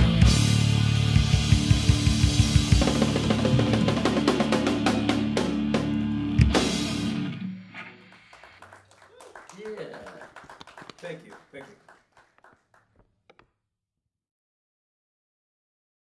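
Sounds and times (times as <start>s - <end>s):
live rock band playing: 0.0s - 7.6s
held guitar chords: 0.0s - 7.8s
fast drumming: 1.2s - 6.9s.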